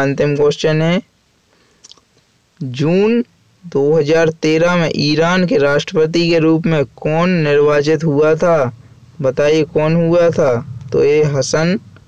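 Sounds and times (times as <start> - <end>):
man speaking: 0.0 - 1.1, 2.6 - 11.9.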